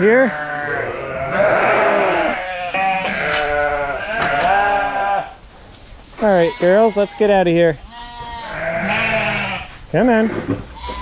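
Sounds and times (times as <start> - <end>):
sheep bleating: 0.0 - 5.4, 6.2 - 11.0.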